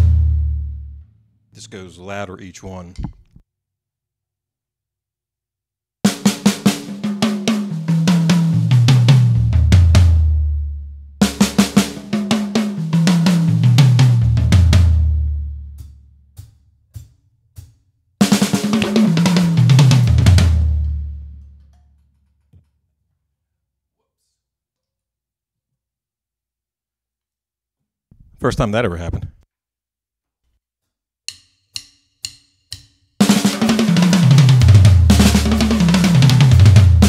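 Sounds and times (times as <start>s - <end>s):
fast tom drum fill: 0.0s - 0.9s, 6.1s - 10.6s, 11.2s - 15.8s, 18.2s - 21.4s, 33.2s - 37.0s.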